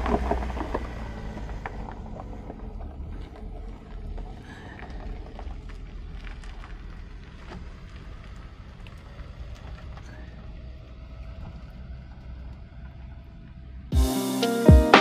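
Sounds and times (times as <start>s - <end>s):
van engine driving away: 0.0s - 15.0s.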